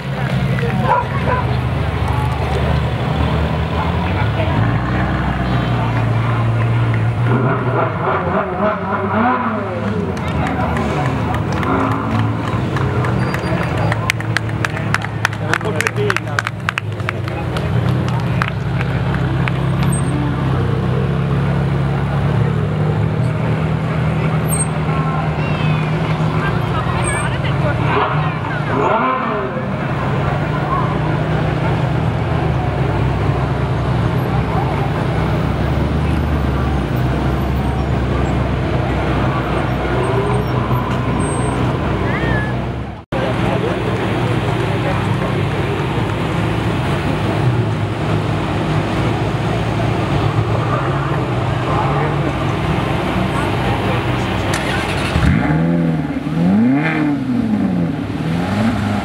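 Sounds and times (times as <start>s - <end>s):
engine revving: 0.0s - 16.2s, 17.3s - 59.0s
crowd chatter: 0.0s - 59.0s
sports car engines rumbling: 0.0s - 59.0s.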